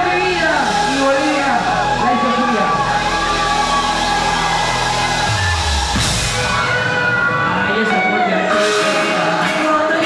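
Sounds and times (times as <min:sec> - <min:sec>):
crowd noise: 0:00.0 - 0:10.0
live music over pa: 0:00.0 - 0:10.0.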